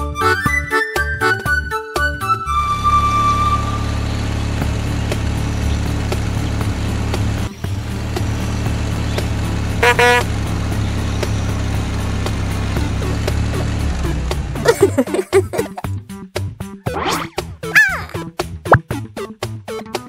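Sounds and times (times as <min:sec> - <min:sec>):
cartoon bus engine running: 0:00.0 - 0:19.6
short horn toot: 0:09.8 - 0:10.3.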